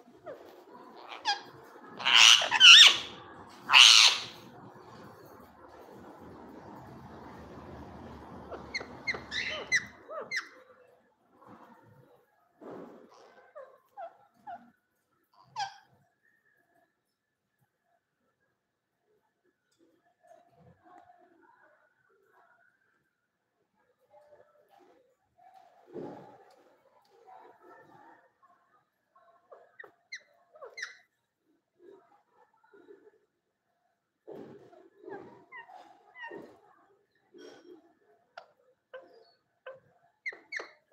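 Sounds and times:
parakeet squeaky chirps: 0:01.0 - 0:04.4, 0:08.4 - 0:10.6, 0:29.8 - 0:31.0, 0:40.2 - 0:40.8.

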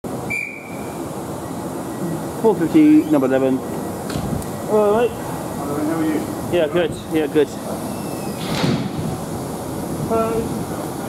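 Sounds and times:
train equipment low hum: 0:00.0 - 0:11.0
high whistle-like tone: 0:00.2 - 0:01.0.

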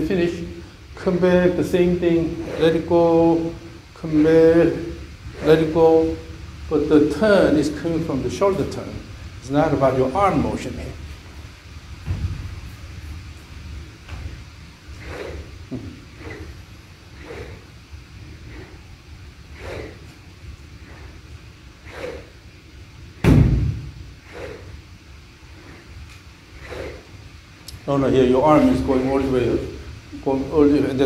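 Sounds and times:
golf club swish: 0:02.3 - 0:04.2, 0:14.1 - 0:17.8, 0:19.5 - 0:20.2, 0:21.8 - 0:22.5, 0:23.2 - 0:24.8, 0:25.7 - 0:27.1
low thump: 0:23.2 - 0:23.9.

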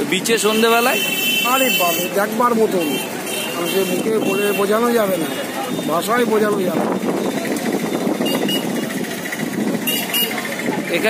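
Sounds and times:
small engine running with rattle: 0:08.7 - 0:10.9.

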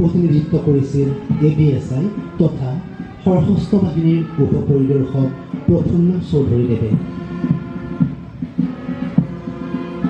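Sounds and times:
band playing march music: 0:00.0 - 0:10.0.

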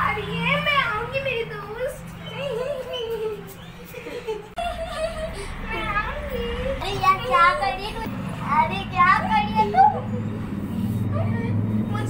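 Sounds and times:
girls chattering and calling out: 0:00.0 - 0:12.0
steady low hum: 0:04.3 - 0:10.9.

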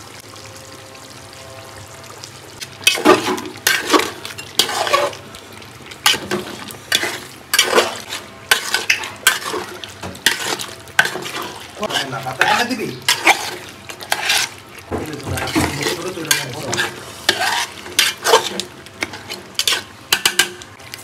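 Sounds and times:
metal spatula scraping pot: 0:02.8 - 0:05.2, 0:06.0 - 0:20.6.

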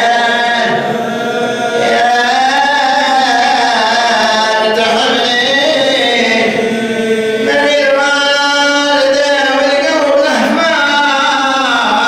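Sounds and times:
man chanting unaccompanied: 0:00.0 - 0:12.0.

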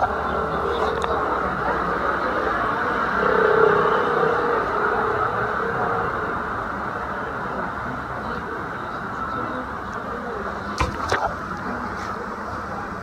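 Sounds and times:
road traffic noise: 0:00.0 - 0:13.0.

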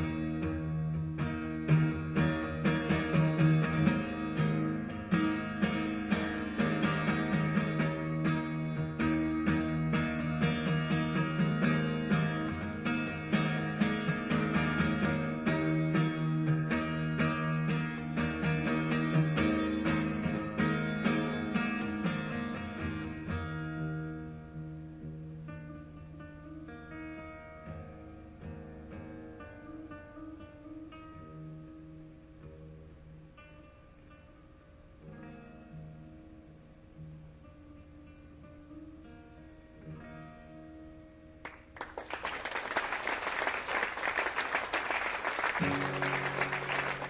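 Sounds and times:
acoustic guitar strummed rapidly: 0:00.0 - 0:23.8, 0:41.9 - 0:47.0.

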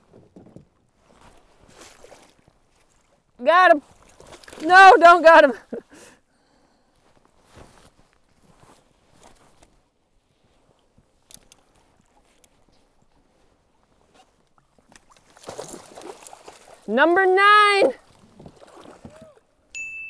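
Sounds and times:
water splashing: 0:01.6 - 0:05.7, 0:14.6 - 0:19.4.

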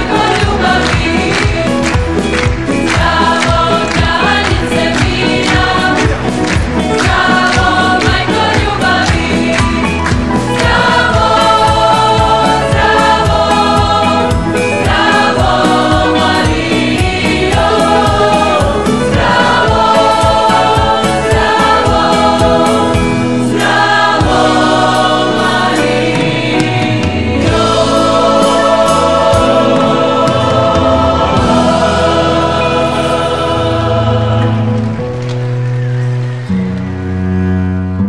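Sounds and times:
choir singing religious song: 0:00.0 - 0:35.2
instrumental accompaniment with beat: 0:00.0 - 0:36.4.

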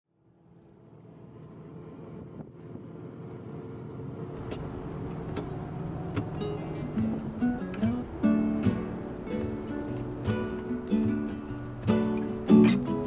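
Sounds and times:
vehicle engine and road noise: 0:00.1 - 0:13.0.

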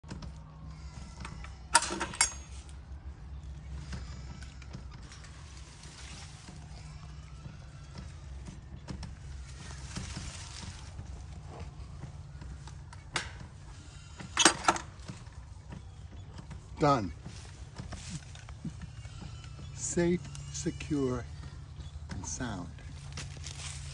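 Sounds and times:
metal gate latch clanking: 0:01.7 - 0:02.6, 0:14.4 - 0:15.0.

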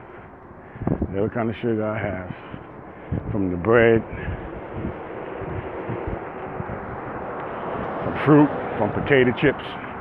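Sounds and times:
car approaching: 0:00.0 - 0:10.0
wind buffeting microphone: 0:00.0 - 0:10.0.

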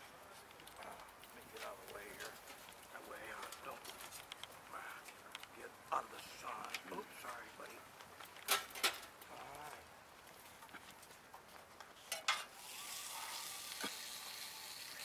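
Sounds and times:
steady hiss: 0:12.5 - 0:15.0.

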